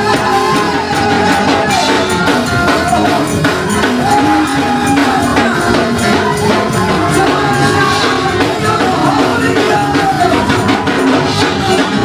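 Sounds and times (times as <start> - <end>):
fast percussion beat: 0.0 - 12.0.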